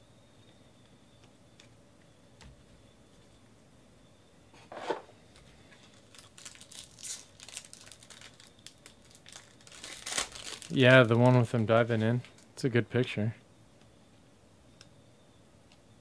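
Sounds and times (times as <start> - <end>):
foil wrapper crackling and tearing: 5.7 - 11.4.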